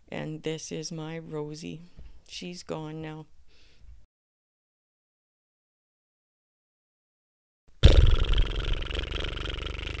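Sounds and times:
cat purring: 7.8 - 10.0.

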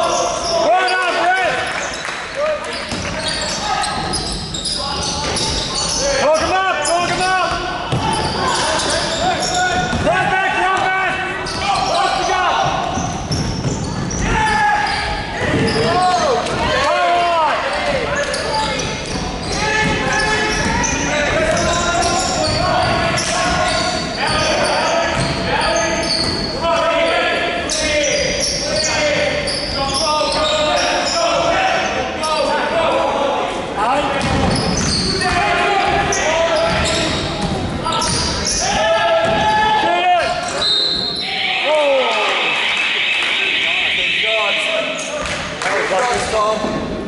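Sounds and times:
sneakers squeaking: 0.0 - 32.7, 34.1 - 39.6, 40.3 - 41.4.

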